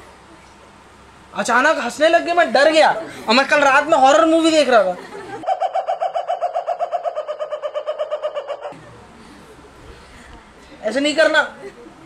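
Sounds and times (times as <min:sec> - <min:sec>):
rapid spooky cackling laugh: 0:04.9 - 0:09.0.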